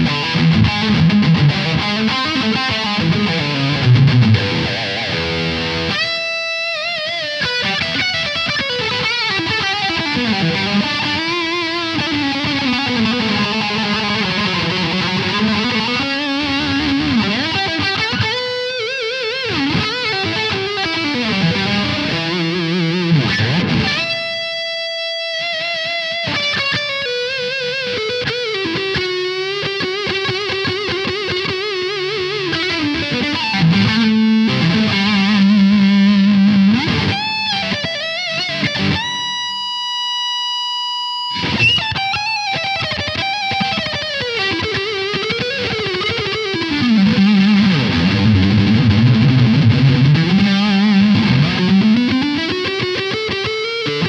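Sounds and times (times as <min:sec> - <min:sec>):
distorted electric guitar lead: 0:00.0 - 0:54.0.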